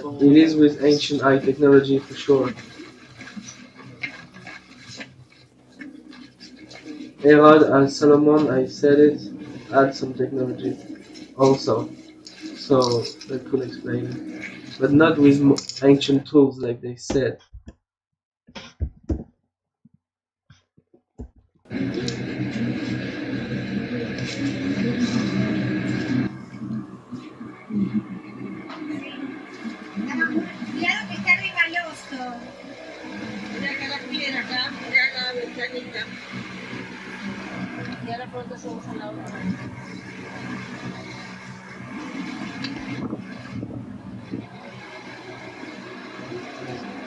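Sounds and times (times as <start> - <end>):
indistinct voices: 0.0 - 4.9, 5.8 - 16.4, 21.7 - 47.0
steady background noise: 0.0 - 16.4, 21.7 - 47.0.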